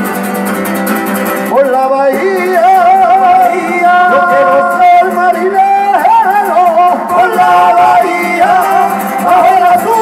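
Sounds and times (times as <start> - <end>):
acoustic guitars strumming: 0.0 - 10.0.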